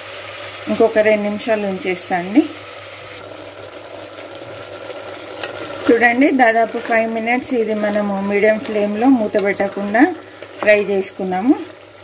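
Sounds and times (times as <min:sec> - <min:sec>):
chicken sizzling in a pot: 0:00.0 - 0:12.0.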